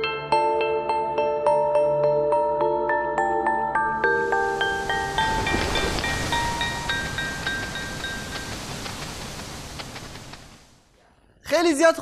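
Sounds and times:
high tinkling notes: 0:03.9 - 0:08.9
shimmering whoosh: 0:04.0 - 0:08.6.

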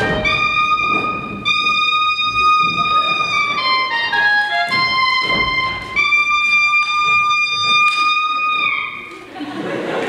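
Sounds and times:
trumpet holding high note: 0:00.0 - 0:02.6.

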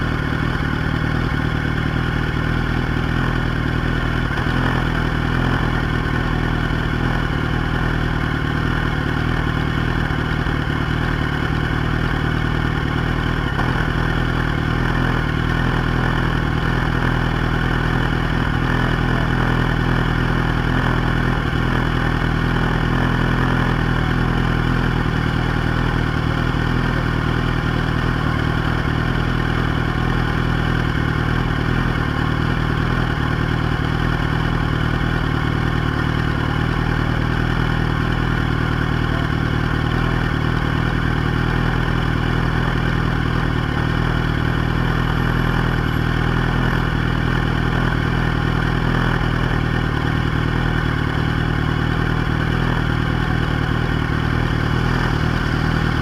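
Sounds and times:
motorcycle engine idling: 0:00.0 - 0:56.0.

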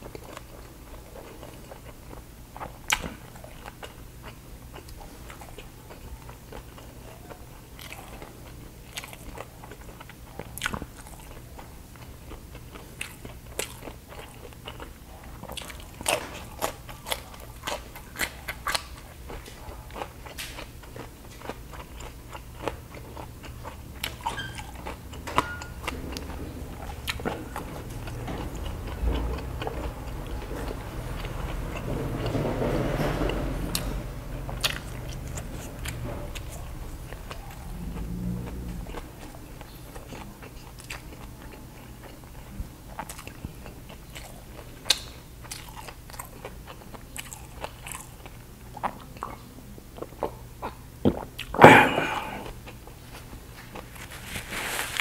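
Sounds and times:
chewing crispy pork skin: 0:00.0 - 0:55.0.

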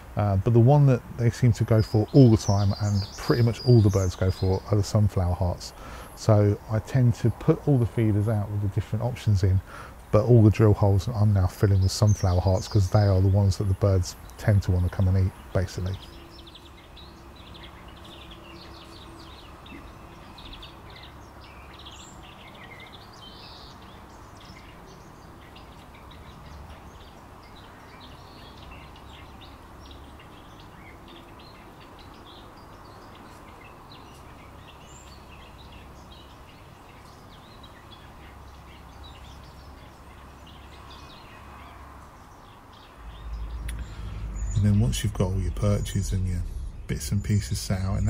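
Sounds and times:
low outdoor hum: 0:00.0 - 0:48.0
small birds chirping: 0:00.0 - 0:48.0.

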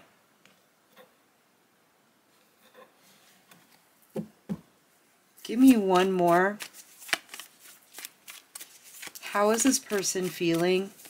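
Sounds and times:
cards being shuffled: 0:05.4 - 0:11.0.

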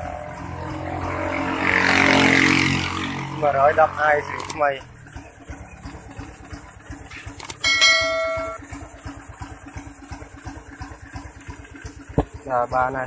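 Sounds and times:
motorcycle engine idling: 0:00.0 - 0:13.0
steady ringing tone: 0:04.9 - 0:12.0.

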